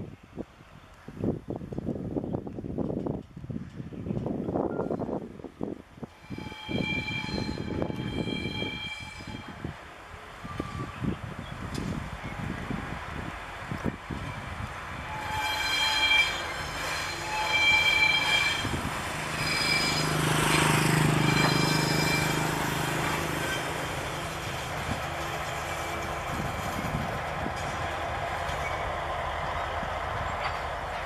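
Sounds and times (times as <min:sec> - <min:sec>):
low train rumble: 0:00.0 - 0:31.0
train wheels squealing: 0:06.2 - 0:09.6, 0:10.4 - 0:11.2, 0:14.2 - 0:24.6.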